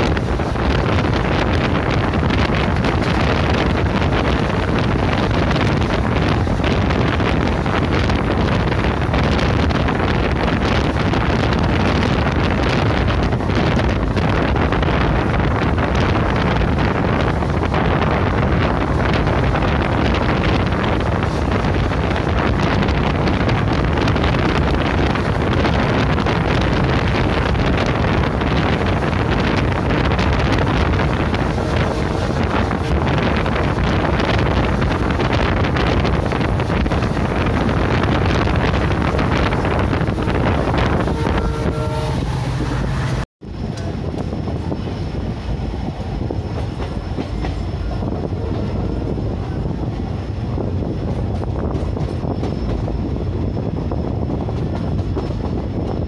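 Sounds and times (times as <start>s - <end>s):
wind on microphone: 0.0s - 56.0s
train horn: 40.1s - 43.2s, 47.8s - 49.4s
train wheels clattering on rails: 43.0s - 56.0s.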